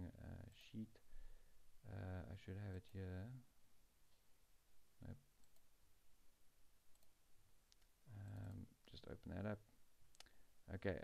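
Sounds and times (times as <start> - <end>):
computer mouse clicks: 5.4 - 5.7, 6.9 - 9.4, 10.1 - 10.4.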